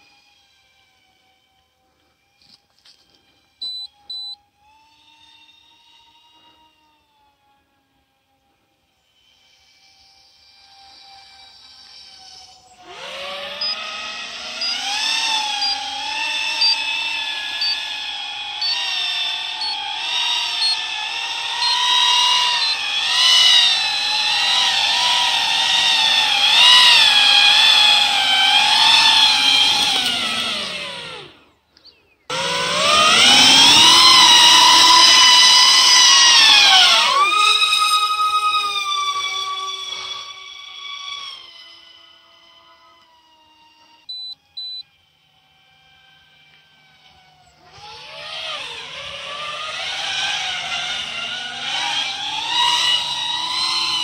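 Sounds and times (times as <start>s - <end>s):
drone motors and propellers whining: 0.0s - 54.0s.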